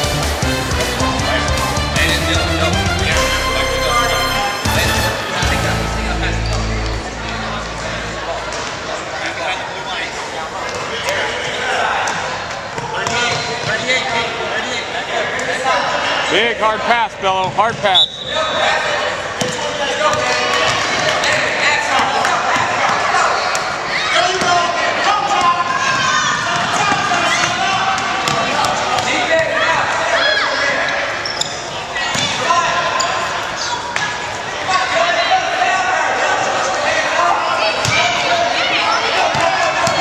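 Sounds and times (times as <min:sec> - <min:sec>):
crowd talking and calling out: 0:00.0 - 0:40.0.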